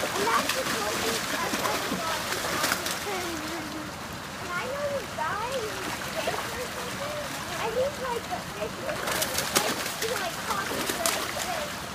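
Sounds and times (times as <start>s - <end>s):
fish splashing and thrashing: 0.0s - 11.9s
running water: 0.0s - 11.9s.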